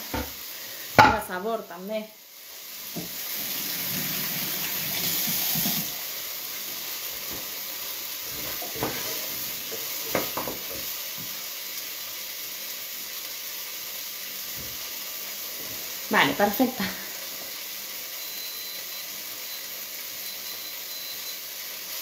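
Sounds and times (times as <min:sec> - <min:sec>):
food sizzling in a pan: 0:00.0 - 0:22.0.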